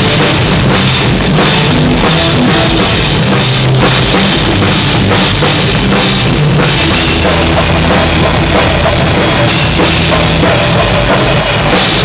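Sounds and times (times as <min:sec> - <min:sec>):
drums and crashing cymbals: 0:00.0 - 0:12.0
live rock band playing: 0:00.0 - 0:12.0.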